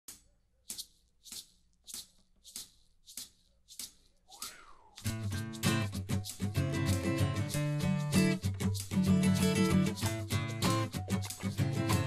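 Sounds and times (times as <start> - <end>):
handheld shaker shaken: 0.7 - 12.0.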